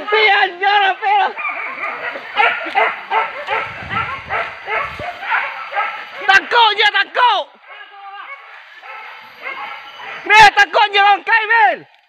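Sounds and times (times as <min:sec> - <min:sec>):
dogs barking: 0:00.0 - 0:06.6, 0:07.6 - 0:10.4.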